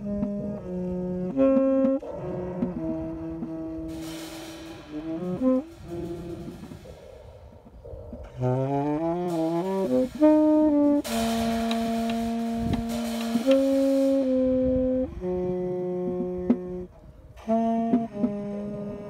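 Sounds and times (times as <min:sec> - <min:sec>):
tenor saxophone improvising: 0:00.0 - 0:06.9, 0:08.2 - 0:19.0
drum kit with soft mallets: 0:00.0 - 0:19.0
cymbal wash: 0:03.8 - 0:14.9.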